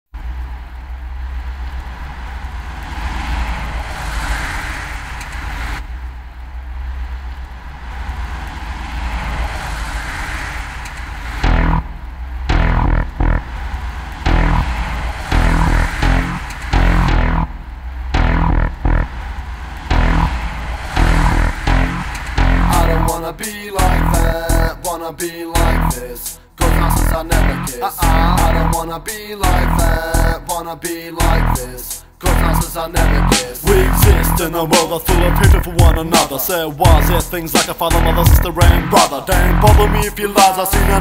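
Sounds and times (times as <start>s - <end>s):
deep bass drone: 0.2s - 30.6s, 31.2s - 41.0s
hissing sweeps: 0.7s - 26.7s
heavy bass and drum beat: 11.4s - 30.6s, 31.2s - 41.0s.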